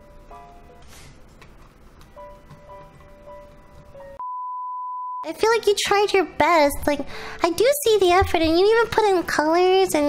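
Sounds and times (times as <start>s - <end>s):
soft background music: 0.0s - 4.2s, 5.2s - 10.0s.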